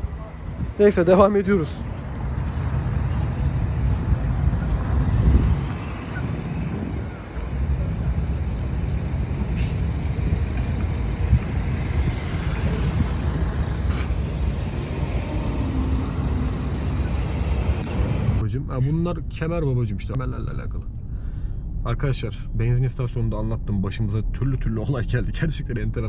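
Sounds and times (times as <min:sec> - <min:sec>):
wind on microphone: 0:00.0 - 0:01.0, 0:01.8 - 0:18.4
vehicle engines rumbling: 0:00.0 - 0:26.0.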